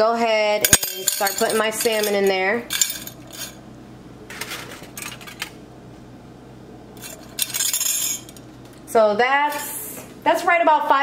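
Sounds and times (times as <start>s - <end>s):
metal objects clinking into glass dish: 0.6s - 3.6s, 7.0s - 8.4s.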